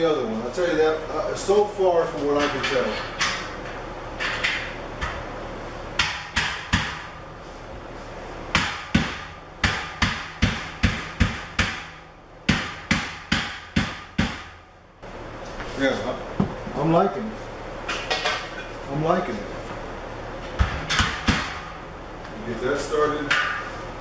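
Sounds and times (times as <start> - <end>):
rubber mallet striking steel beams: 6.0 - 7.2, 8.5 - 14.6.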